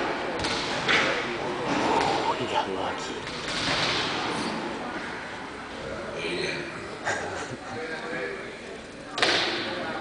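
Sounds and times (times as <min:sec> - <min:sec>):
voices in a large hall: 0:00.0 - 0:10.0.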